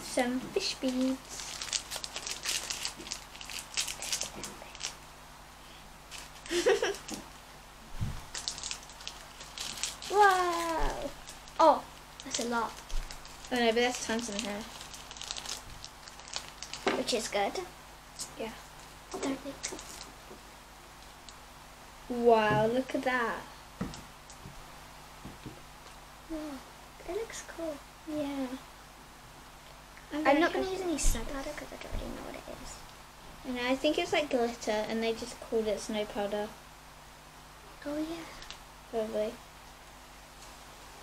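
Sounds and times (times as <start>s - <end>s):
plastic beads ticking: 0.8s - 5.0s, 8.3s - 17.3s
soft thump: 8.0s - 8.2s
girl humming: 10.1s - 11.2s, 26.3s - 26.7s.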